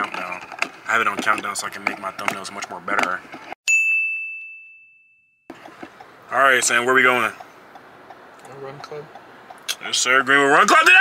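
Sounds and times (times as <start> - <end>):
bell-like ding: 3.7 - 5.5.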